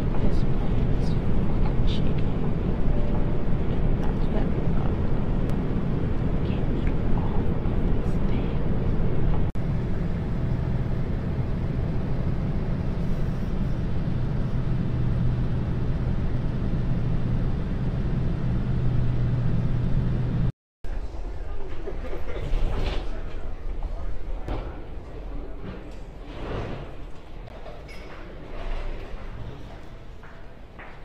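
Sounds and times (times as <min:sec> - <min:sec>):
low engine hum: 0:00.0 - 0:21.2
airliner cabin drone: 0:00.0 - 0:30.7.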